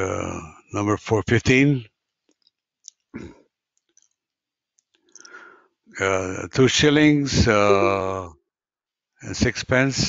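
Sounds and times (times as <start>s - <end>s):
faint clicks: 2.2s - 5.5s.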